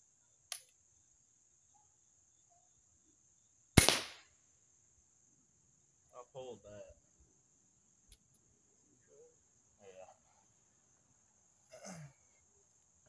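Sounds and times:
crossbow firing snap: 0:03.8 - 0:04.3.

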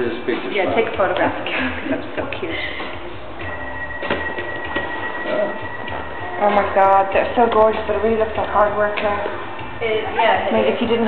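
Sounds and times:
high-pitched electronic tone: 0:03.4 - 0:07.4.

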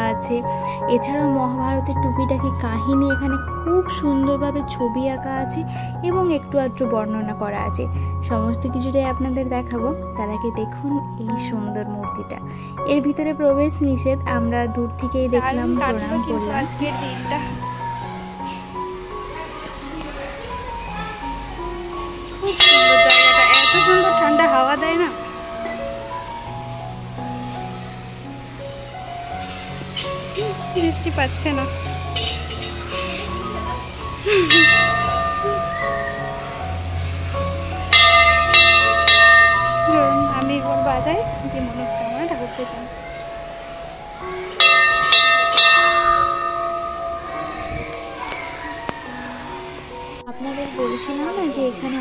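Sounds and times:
temple bell ringing: 0:21.0 - 0:50.2.

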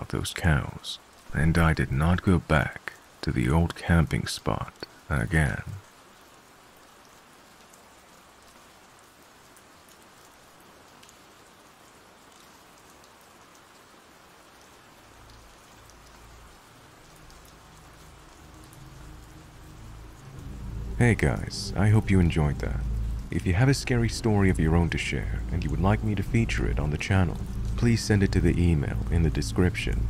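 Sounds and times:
steady rain: 0:00.0 - 0:30.0
low rumble: 0:18.2 - 0:30.0.

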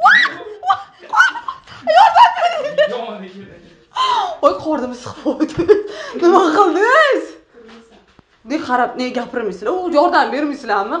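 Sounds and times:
women laughing: 0:00.0 - 0:03.0
excited talking: 0:00.0 - 0:03.2, 0:04.0 - 0:07.4.

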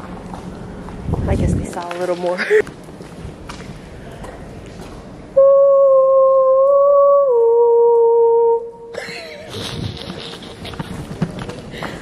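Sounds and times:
faint tunnel background noise: 0:00.0 - 0:12.0
person singing long ooo note: 0:05.4 - 0:09.0.

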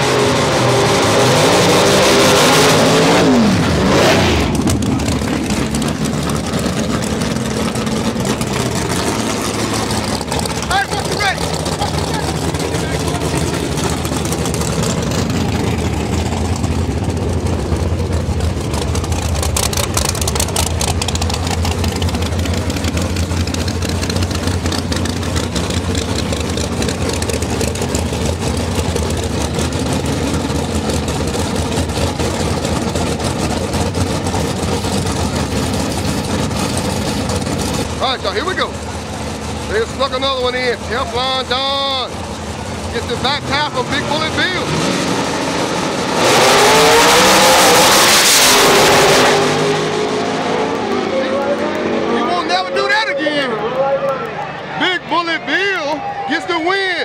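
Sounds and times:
car engines idling: 0:00.0 - 0:57.0
crowd voices: 0:07.7 - 0:16.7, 0:50.2 - 0:57.0.

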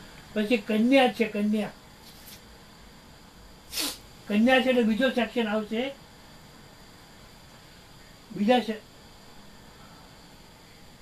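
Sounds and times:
person sharp breath: 0:03.7 - 0:04.1.

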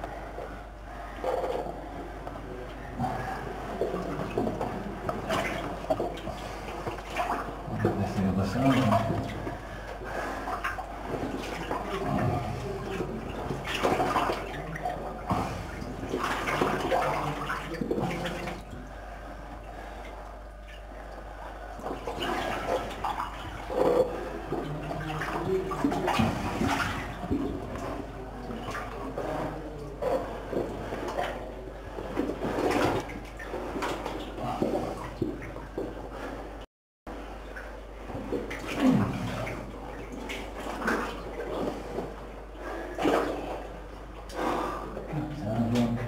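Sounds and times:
water sloshing and splashing: 0:00.0 - 0:46.0.

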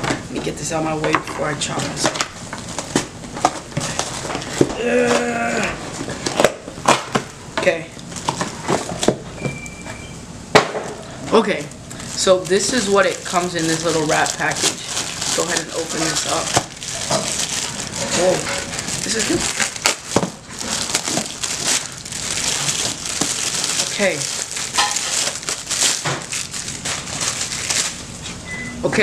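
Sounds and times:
plastic wrap crinkling: 0:01.6 - 0:05.2, 0:05.9 - 0:09.2, 0:11.3 - 0:28.4.

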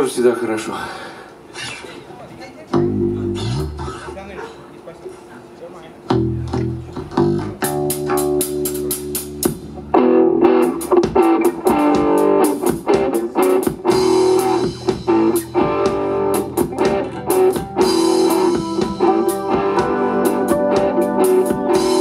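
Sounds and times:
live rock band playing: 0:02.7 - 0:04.1, 0:06.1 - 0:22.0
steady drum beat and cymbals: 0:06.8 - 0:09.9, 0:10.6 - 0:22.0.

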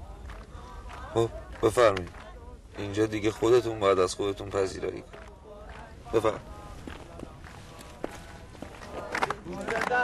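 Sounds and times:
soft footsteps: 0:05.8 - 0:09.5.

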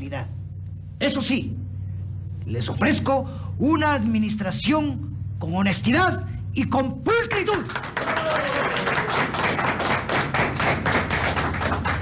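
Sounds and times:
crowd applauding: 0:07.3 - 0:12.0.

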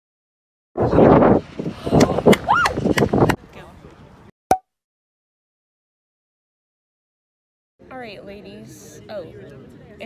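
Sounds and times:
rising and falling whoop: 0:01.8 - 0:02.8.

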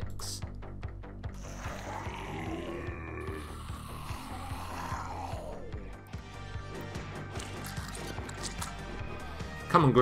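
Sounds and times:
game music with low beat: 0:00.0 - 0:10.0.

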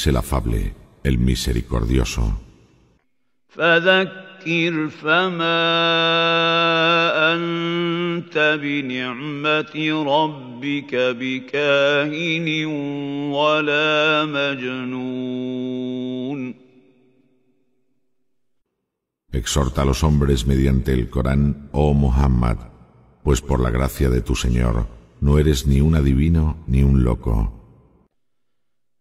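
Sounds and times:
man reciting melodically: 0:00.0 - 0:02.7, 0:03.5 - 0:16.6, 0:19.3 - 0:27.8.

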